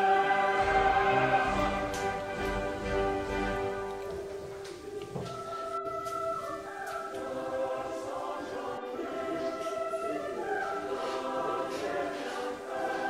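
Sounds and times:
choir singing held chords: 0:00.0 - 0:13.0.

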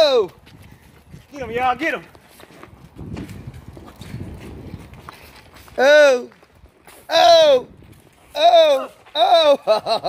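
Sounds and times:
footsteps on pavement: 0:00.0 - 0:09.6.

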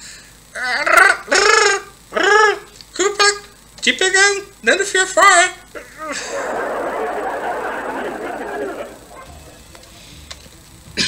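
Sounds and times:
high-pitched cackling laughs: 0:05.8 - 0:10.0.

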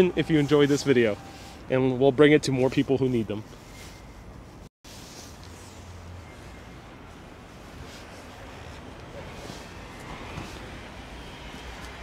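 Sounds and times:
street noise: 0:00.0 - 0:12.0
traffic rumble: 0:00.0 - 0:12.0.

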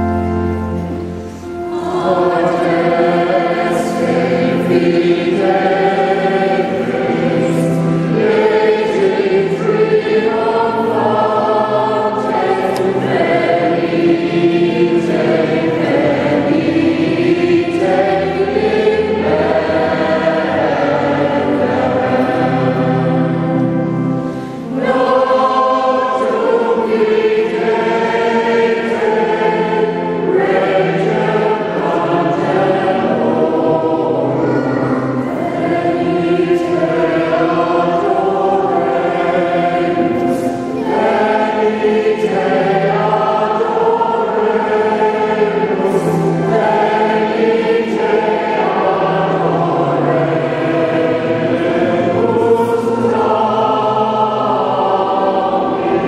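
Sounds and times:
mixed choir singing a carol: 0:00.0 - 0:56.0.

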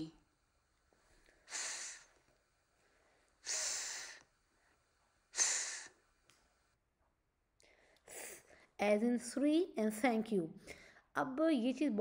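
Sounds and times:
voice making breathy th sound: 0:01.5 - 0:02.2, 0:03.4 - 0:04.2, 0:05.4 - 0:06.0.

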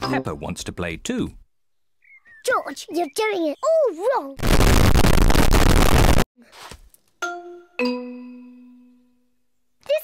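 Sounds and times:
loud distorted noise blast: 0:04.4 - 0:06.2.

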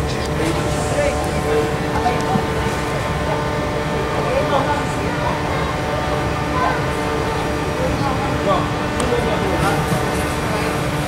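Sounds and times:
low rumbling indoor din: 0:00.0 - 0:11.0.

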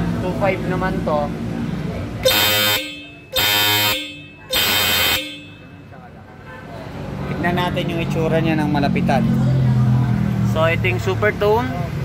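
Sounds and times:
electric horn blasts: 0:02.2 - 0:05.6.

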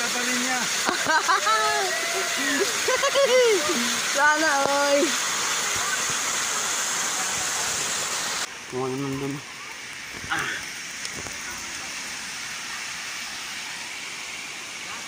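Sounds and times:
waterfall rushing: 0:00.0 - 0:15.0.

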